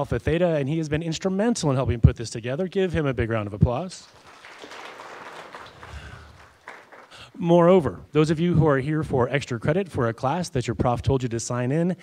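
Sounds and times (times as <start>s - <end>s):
small audience applauding: 4.0s - 7.3s.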